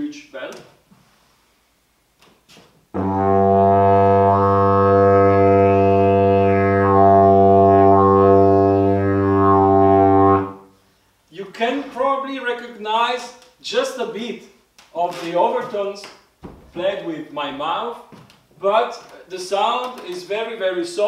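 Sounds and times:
didgeridoo low drone: 3.0s - 10.6s.

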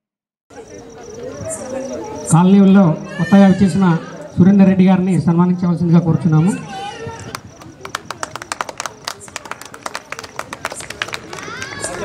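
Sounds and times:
group clapping: 7.2s - 12.0s.

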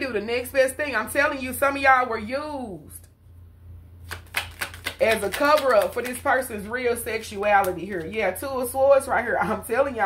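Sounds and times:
cards being shuffled: 4.0s - 6.3s.

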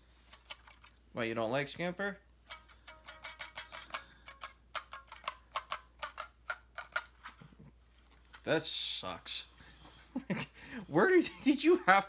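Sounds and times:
toy guitar clicks and plucks: 2.4s - 7.1s.

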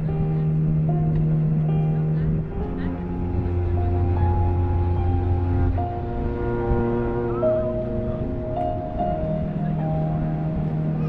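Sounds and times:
bowed cello: 0.0s - 11.0s.

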